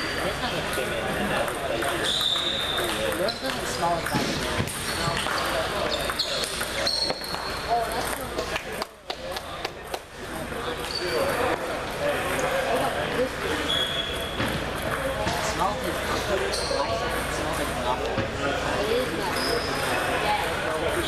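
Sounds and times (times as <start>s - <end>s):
players' voices: 0.0s - 21.0s.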